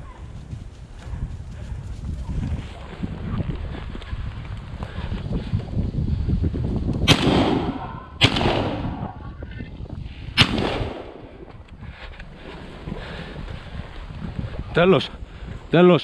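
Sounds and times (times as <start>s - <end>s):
shotgun shots echoing: 7.1s - 9.2s, 10.4s - 11.4s.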